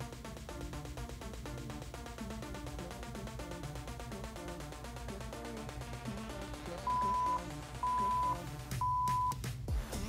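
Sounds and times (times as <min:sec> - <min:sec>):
party music: 0:01.7 - 0:09.4
electronic beeps: 0:06.8 - 0:09.4.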